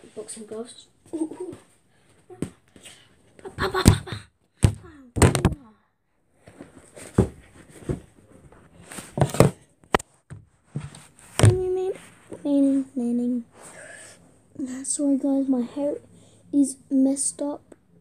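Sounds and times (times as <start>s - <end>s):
boxing gloves knocking together: 3.6s - 5.6s.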